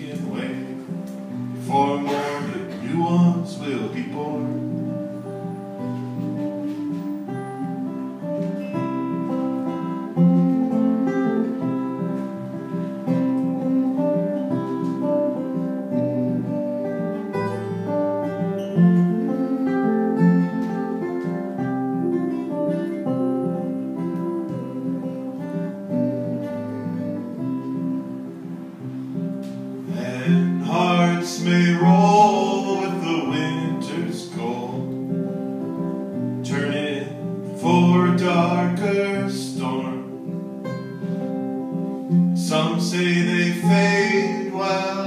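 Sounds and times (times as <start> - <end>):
man singing: 0.0 - 1.0, 1.6 - 5.8, 29.9 - 35.3, 36.4 - 40.3, 42.3 - 45.0
acoustic guitar playing: 0.0 - 45.0.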